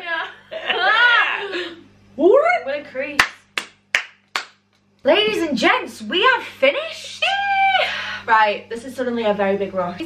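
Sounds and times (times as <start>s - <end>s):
person clapping hands: 3.2s - 4.8s.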